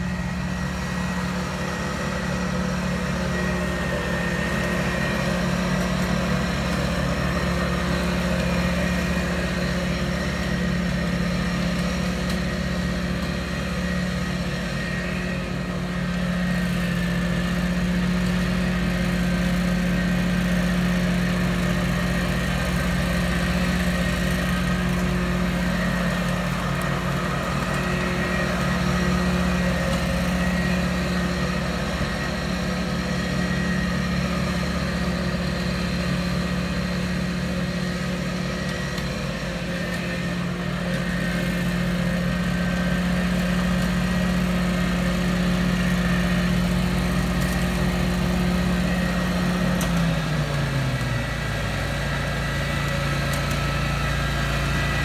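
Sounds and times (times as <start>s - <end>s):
mower engine running: 0.0s - 55.0s.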